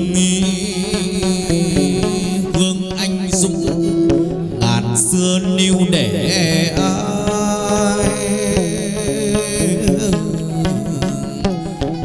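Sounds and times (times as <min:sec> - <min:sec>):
lute melody: 0:00.0 - 0:12.0.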